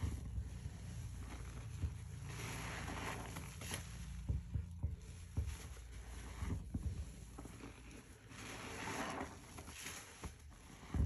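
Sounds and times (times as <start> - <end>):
wet sponge squelching in suds: 0.0 - 4.3, 5.0 - 11.0.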